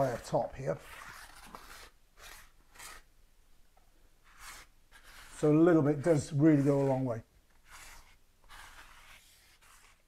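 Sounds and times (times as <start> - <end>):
faint scraper scrapes on concrete: 6.1 - 10.0.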